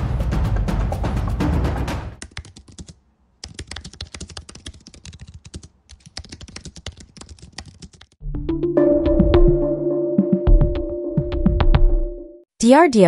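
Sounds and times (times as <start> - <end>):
typing on computer keyboard: 2.2 - 8.2.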